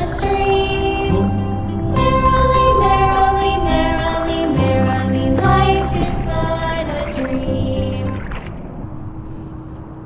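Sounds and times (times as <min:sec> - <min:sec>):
background music: 0:00.0 - 0:08.3
wind and water on microphone: 0:00.0 - 0:10.0.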